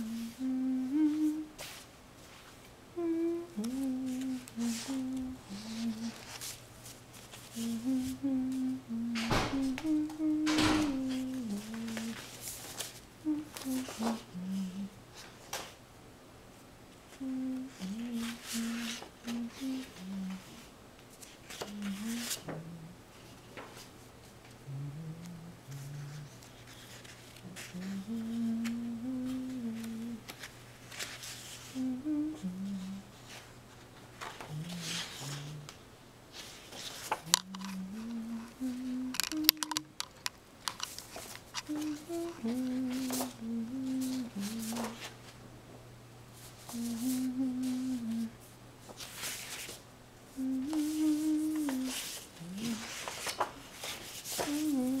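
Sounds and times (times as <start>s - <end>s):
person humming a slow tune: 0.0s - 1.8s, 2.9s - 6.5s, 7.5s - 15.0s, 17.1s - 20.7s, 21.5s - 23.3s, 24.6s - 30.4s, 31.4s - 33.4s, 34.2s - 35.8s, 36.4s - 40.1s, 41.6s - 45.1s, 46.6s - 48.4s, 50.3s - 55.0s.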